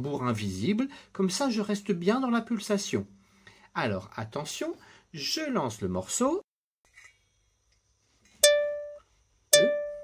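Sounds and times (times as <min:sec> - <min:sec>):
plucked-string note ringing: 0:08.4 - 0:10.0.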